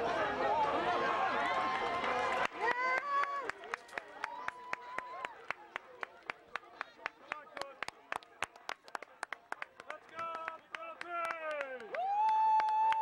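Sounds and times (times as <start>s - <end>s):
people clapping: 0.5s - 13.0s.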